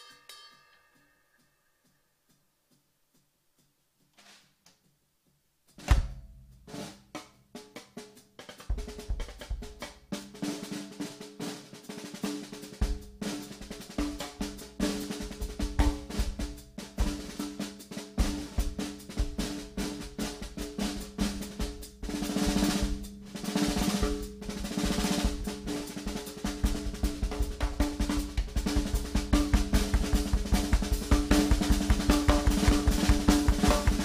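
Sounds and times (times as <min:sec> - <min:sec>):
drum kit played with sticks: 0:00.0 - 0:02.0, 0:05.7 - 0:34.0.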